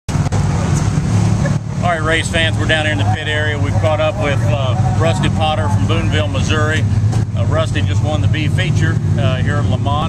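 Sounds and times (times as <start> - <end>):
race car engines running: 0.1 - 10.0.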